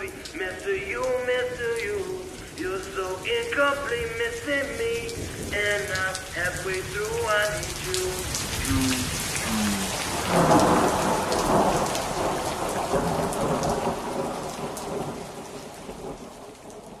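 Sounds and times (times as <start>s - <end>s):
rain falling steadily: 0.0s - 17.0s
thunder rolling: 10.0s - 15.2s.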